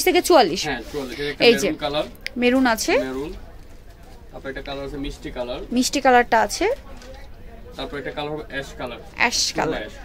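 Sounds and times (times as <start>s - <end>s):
narration: 0.0s - 10.0s.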